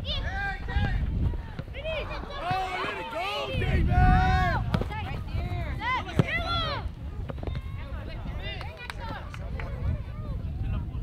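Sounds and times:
voices shouting and calling out: 0:00.0 - 0:11.0
wind rumbling on microphone: 0:00.0 - 0:11.0.

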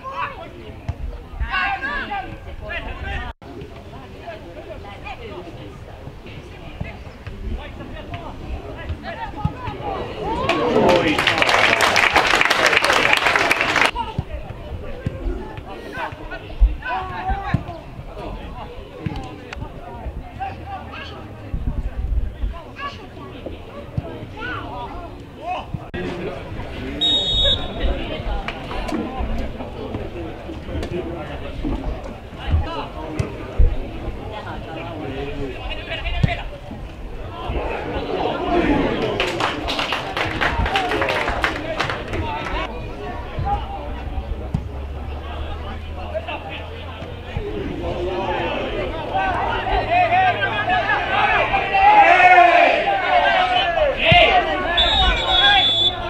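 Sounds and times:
distant shouts and calls: 0:48.2 - 0:56.0.

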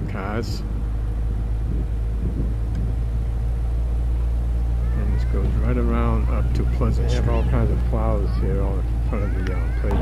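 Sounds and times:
engine running with low rumble: 0:00.0 - 0:10.0.

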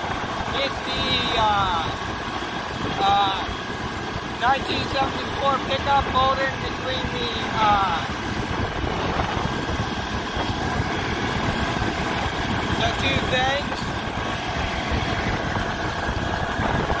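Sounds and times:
tractor diesel engine running: 0:00.0 - 0:17.0.

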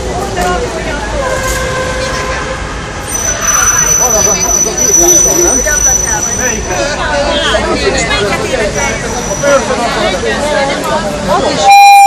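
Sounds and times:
crowd talking and calling out: 0:00.0 - 0:12.0
low traffic rumble: 0:00.0 - 0:12.0
steady high-pitched tone: 0:03.0 - 0:07.0.

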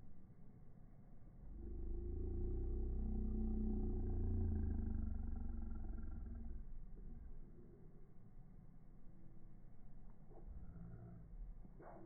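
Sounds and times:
passing engine rumble: 0:01.4 - 0:07.9.

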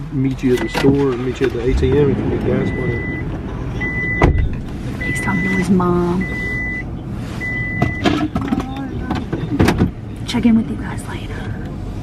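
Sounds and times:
man talking: 0:00.1 - 0:03.2.

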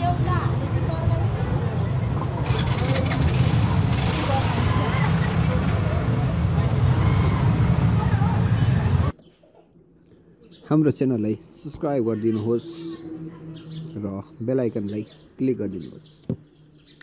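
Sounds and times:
people talking: 0:00.0 - 0:09.1
road traffic rumble: 0:00.0 - 0:09.2.

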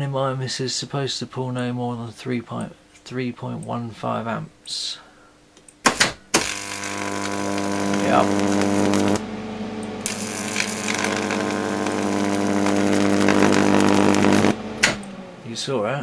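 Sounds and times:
transformer mains buzz: 0:05.9 - 0:16.0
arc hissing sizzle: 0:06.3 - 0:15.5
switch click: 0:14.8 - 0:15.2.

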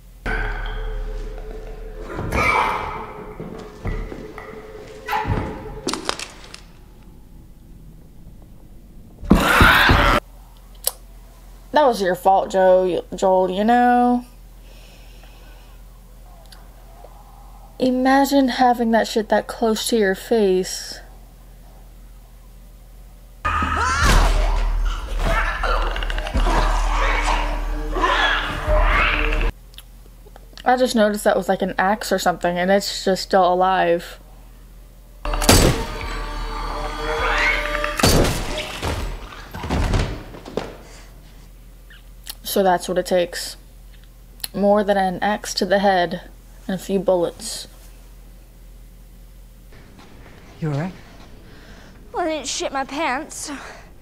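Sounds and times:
tense music: 0:00.0 - 0:10.2, 0:23.5 - 0:29.5, 0:35.2 - 0:40.0
thuds during a struggle: 0:02.0 - 0:06.5, 0:09.2 - 0:10.2.

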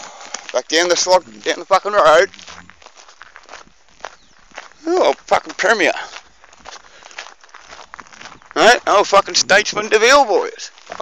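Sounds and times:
soft footsteps: 0:00.0 - 0:11.0.

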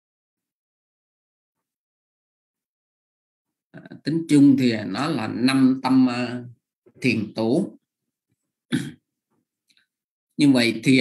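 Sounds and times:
person clearing throat: 0:08.7 - 0:09.1.

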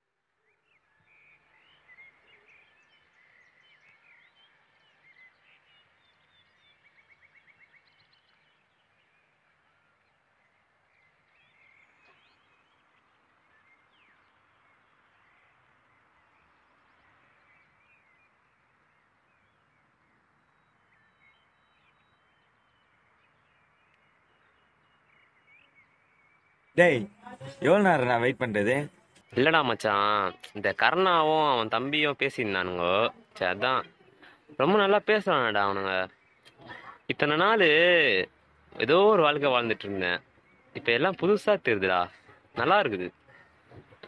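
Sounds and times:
small birds chirping: 0:00.3 - 0:44.0.

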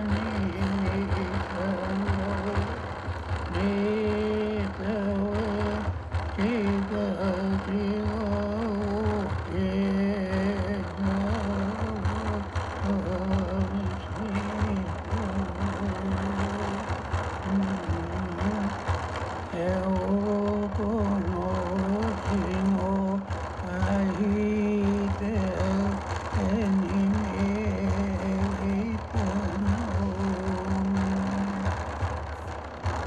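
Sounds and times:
person chanting: 0:00.0 - 0:18.9, 0:19.5 - 0:31.9
frame drum beating: 0:00.0 - 0:33.0.

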